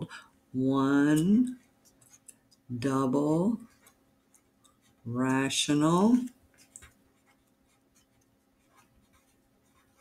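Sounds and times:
marker pen scratching on paper: 0:01.0 - 0:10.0.

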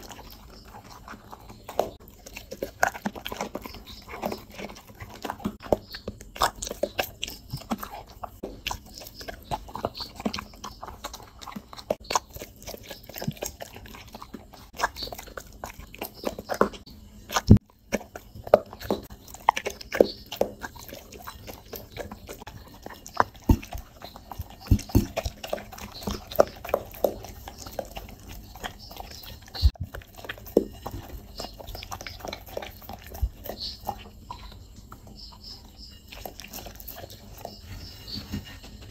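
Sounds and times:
dog chewing wet food: 0:00.0 - 0:38.9.

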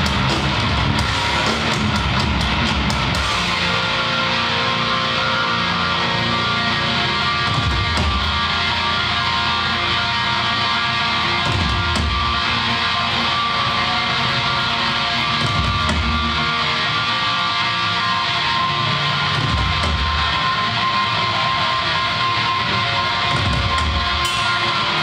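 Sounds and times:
heavy metal band playing live: 0:00.0 - 0:25.0.

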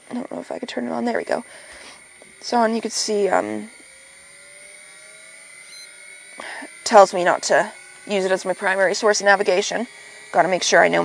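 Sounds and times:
faint electrical whir: 0:00.0 - 0:11.0
thin rising tone: 0:00.9 - 0:11.0
high beep: 0:05.6 - 0:06.7.

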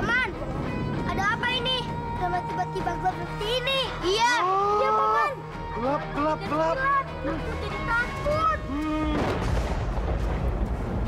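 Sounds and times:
background music: 0:00.0 - 0:11.0
low rumbling boom: 0:09.0 - 0:11.0.

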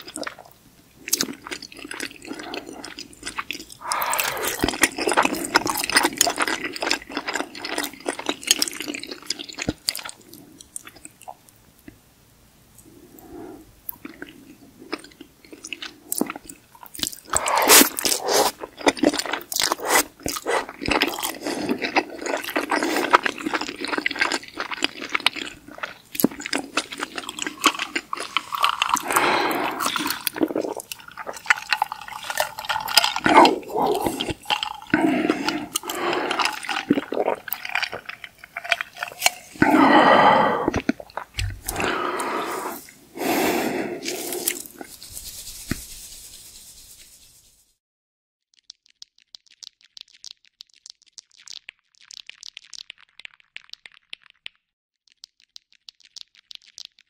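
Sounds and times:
wet chewing and slurping noodles: 0:00.0 - 0:11.4, 0:13.2 - 0:45.8
mouth clicks: 0:03.7 - 0:05.8, 0:38.7 - 0:44.9
sipping through a straw: 0:03.8 - 0:05.7, 0:17.3 - 0:18.7, 0:19.7 - 0:21.8, 0:28.3 - 0:46.9.

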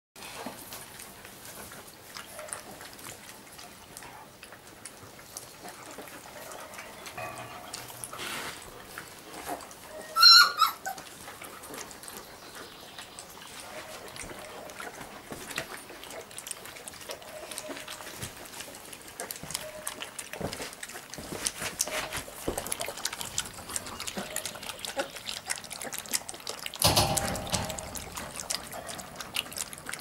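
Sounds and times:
puppies lapping milk: 0:00.2 - 0:30.0
puppy squealing: 0:10.0 - 0:11.1.

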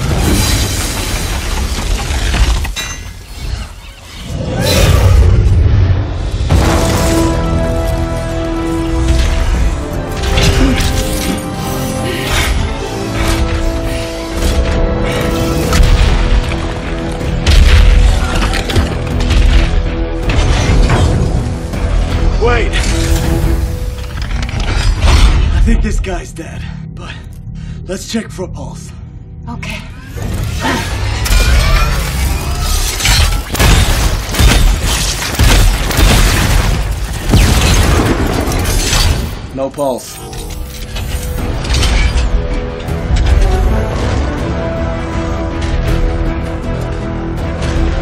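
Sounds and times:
heavy crashing and shattering debris: 0:00.0 - 0:03.3, 0:31.1 - 0:39.5
robot mechanical whirring and clanking: 0:00.0 - 0:05.0, 0:22.7 - 0:25.5, 0:40.0 - 0:43.7
orchestral score: 0:04.5 - 0:35.8, 0:38.0 - 0:48.0.

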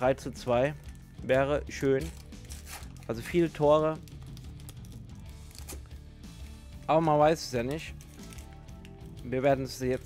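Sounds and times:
quiet background music: 0:00.0 - 0:10.0
plastic wrapper tearing and crinkling: 0:02.0 - 0:03.4, 0:04.0 - 0:05.9, 0:07.6 - 0:09.0.

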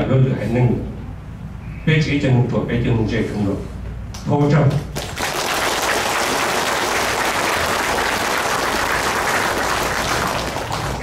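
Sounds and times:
audience applauding: 0:05.0 - 0:11.0.

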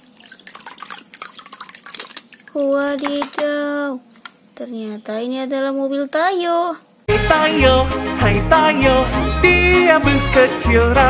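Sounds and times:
water dripping: 0:00.0 - 0:03.6
water sloshing in plastic basin: 0:00.0 - 0:03.7.

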